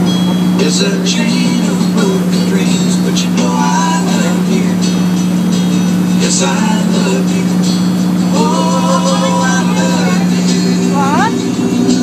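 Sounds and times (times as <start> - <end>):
motorboat engine droning: 0.0 - 12.0.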